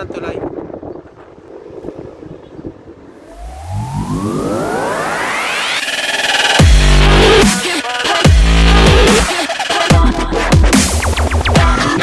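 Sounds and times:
wind noise on microphone: 0.0s - 5.2s
rising synth sweep: 3.2s - 7.6s.

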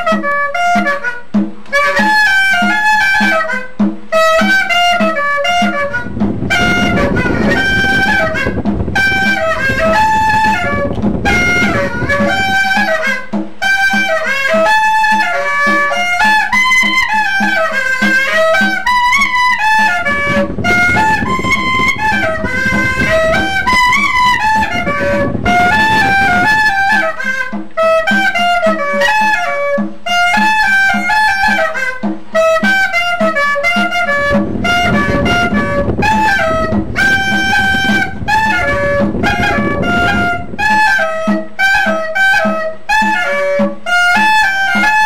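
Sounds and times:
reedy cane clarinet melody: 0.0s - 45.0s
low rough drone: 5.8s - 12.6s, 19.9s - 26.9s, 34.0s - 41.0s.

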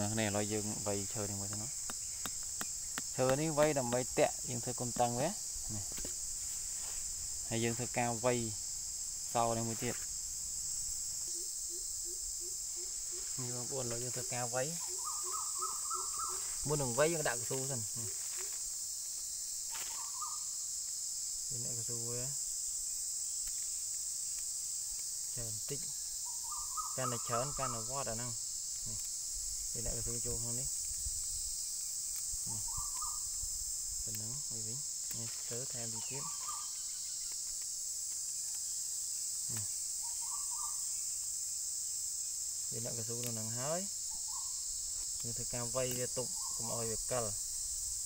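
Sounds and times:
insects droning: 0.0s - 48.0s.

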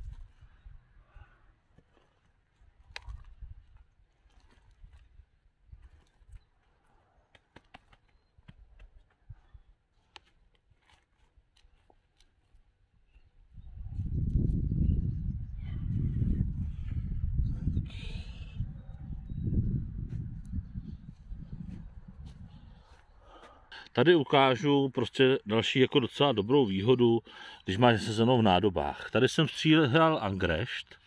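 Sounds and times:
wind buffeting microphone: 0.0s - 1.3s, 2.8s - 3.8s, 13.2s - 23.3s
hands pressing potting soil: 1.7s - 12.7s.

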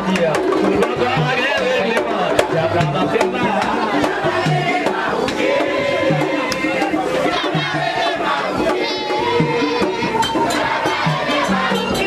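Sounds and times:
crowd singing and shouting: 0.0s - 12.0s.

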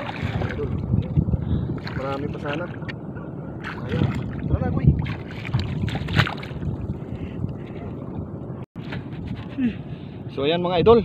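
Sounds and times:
sharp water splash: 0.0s - 0.7s, 3.6s - 6.7s
seawater sloshing: 0.0s - 7.9s.

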